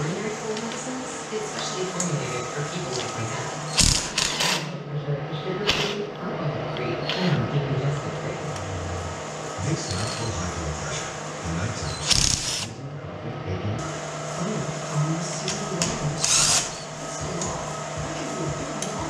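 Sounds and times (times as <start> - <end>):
cordless drill running: 2.9 - 4.6, 9.8 - 10.4, 11.9 - 12.7, 15.4 - 19.0.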